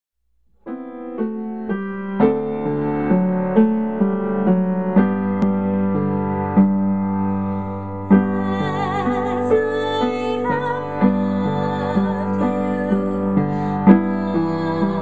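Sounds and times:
solo piano playing a hymn: 0.6 - 15.0.

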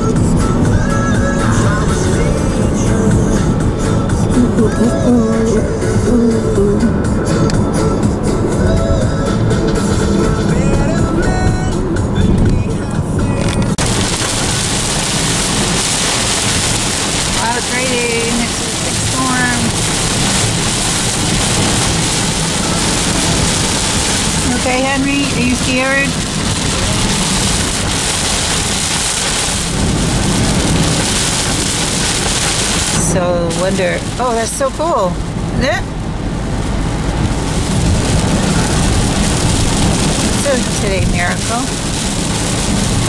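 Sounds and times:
music with a melody: 0.0 - 13.8
rain falling on a car: 0.0 - 43.0.

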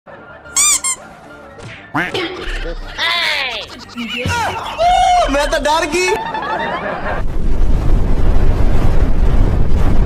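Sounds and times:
high-pitched squeaks: 0.6 - 1.0, 2.4 - 5.7.

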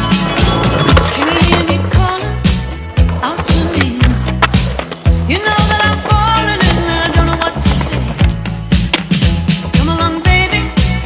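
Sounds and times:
music with bass line: 0.0 - 11.0
skateboard wheels rolling on concrete: 0.0 - 11.0
skateboard clacks and impacts: 0.4 - 2.4, 3.0 - 9.4.

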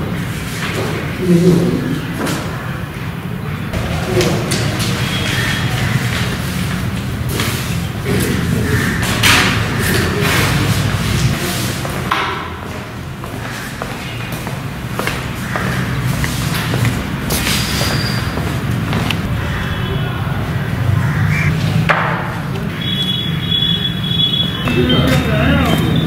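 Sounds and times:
knocks and thuds at desks: 11.9 - 12.8, 21.8 - 22.4
murmured voices: 19.4 - 26.0.

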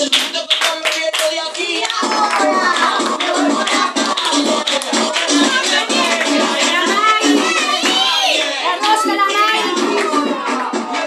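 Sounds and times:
group hand clapping: 0.0 - 11.0
music with singing: 0.0 - 11.0
voices singing along: 0.0 - 11.0.

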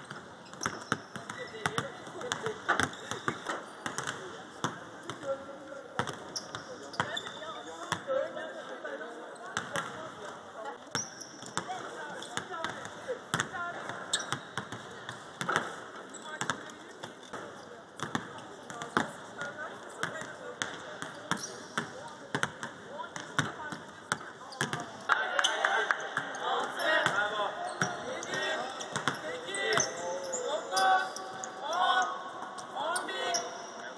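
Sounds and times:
basketballs bouncing on court: 0.0 - 5.4, 6.0 - 8.1, 9.5 - 10.2, 10.9 - 25.0, 27.0 - 30.0.

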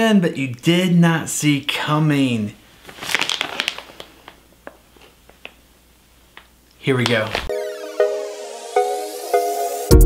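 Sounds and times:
plastic pouch crinkling: 2.8 - 5.6.

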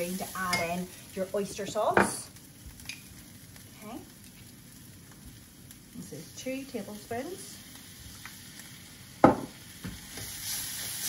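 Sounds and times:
faint sizzle of frying in a wok: 0.0 - 11.0.

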